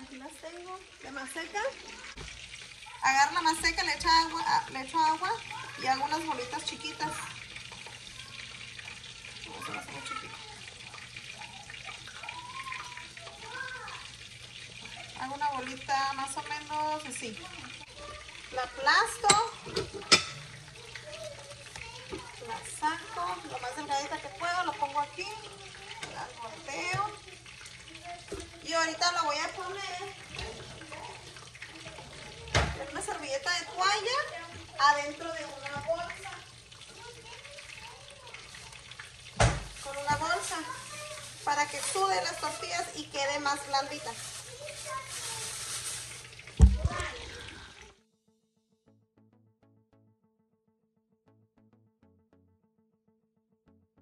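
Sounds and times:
plastic bag crinkling: 0:39.6 - 0:47.2
loud thump: 0:46.6 - 0:47.1.

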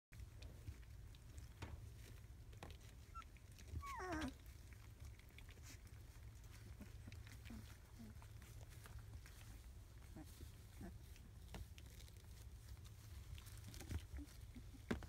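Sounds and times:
puppy whining yelp: 0:02.8 - 0:12.2.

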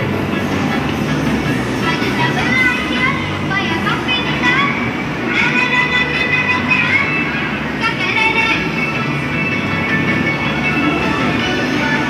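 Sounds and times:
busy background din: 0:00.0 - 0:12.0
voices: 0:00.0 - 0:12.0.

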